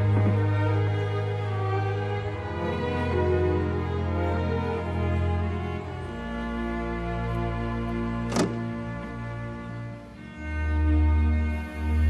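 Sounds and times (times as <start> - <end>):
violin and cello notes: 0.0 - 12.0.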